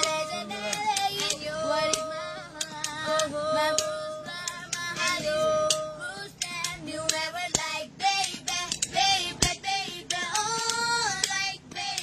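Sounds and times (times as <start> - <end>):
woman singing in a high voice: 0.0 - 12.0.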